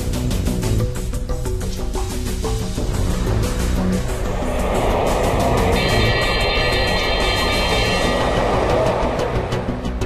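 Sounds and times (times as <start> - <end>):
theme music: 0.1 - 10.0
rushing noise effect: 2.8 - 10.0
cluster of high steady tones: 4.1 - 10.0.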